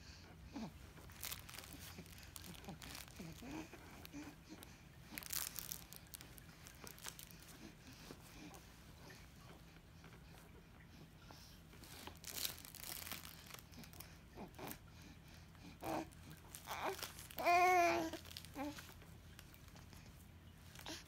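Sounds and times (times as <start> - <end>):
crinkle toy rustling: 0.8 - 8.5, 11.8 - 14.8, 15.8 - 21.0.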